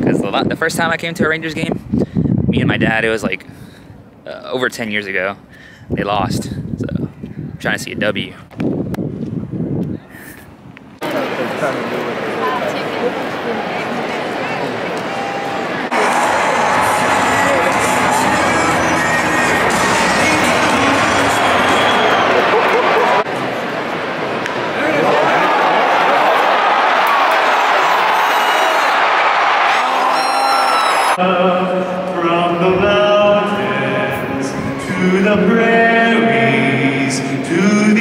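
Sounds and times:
crowd hubbub: 11.0 - 32.8
singing over stadium loudspeakers: 15.1 - 23.3, 30.7 - 38.0.

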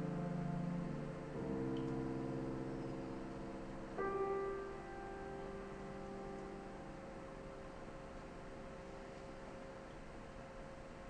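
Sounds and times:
grand piano chords: 0.0 - 11.0.

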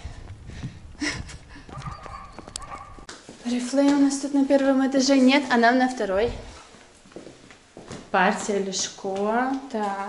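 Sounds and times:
footsteps on paving stones: 0.0 - 5.4.

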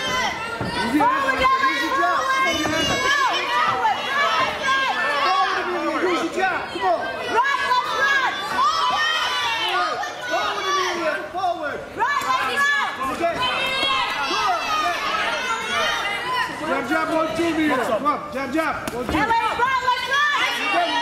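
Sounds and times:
spectators shouting and cheering: 0.0 - 21.0.

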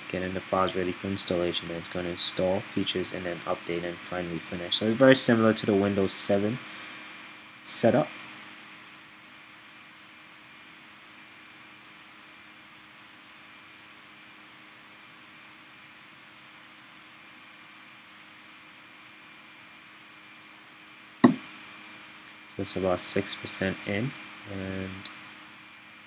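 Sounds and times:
thin steady hum tones: 0.0 - 26.0.

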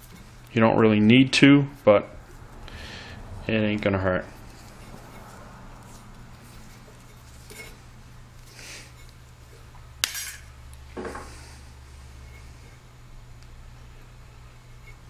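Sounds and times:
electrical tape rasping: 0.0 - 0.6, 4.3 - 9.9.

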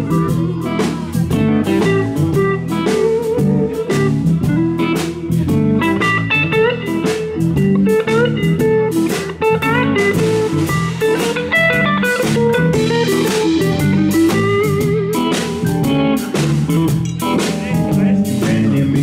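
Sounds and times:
drums: 0.0 - 19.0
electric guitar lead: 0.0 - 19.0.

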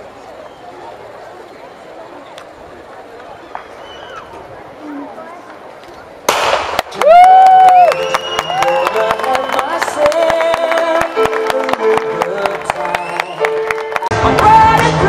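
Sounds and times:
starting pistol bang: 6.3 - 6.9
crowd clapping and cheering: 6.7 - 15.0.

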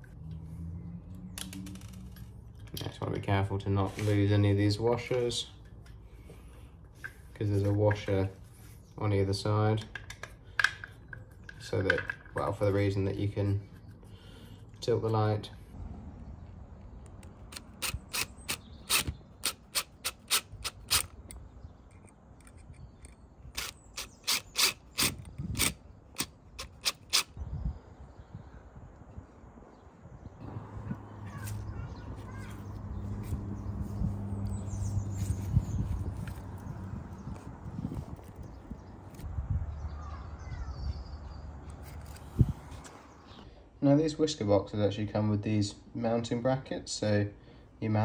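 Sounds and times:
impact driver bursts: 17.5 - 21.2.

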